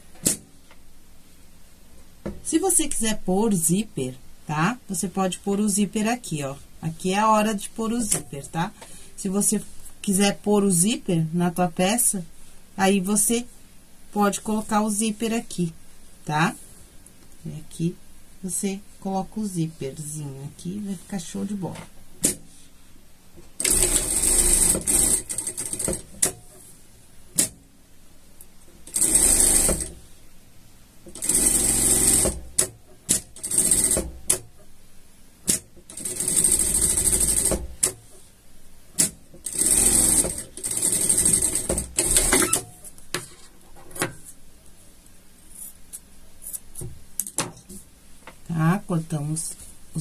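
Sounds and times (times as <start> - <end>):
sewing machine stitching: 23.6 - 26.1, 28.9 - 29.9, 31.1 - 32.4, 39.4 - 42.7.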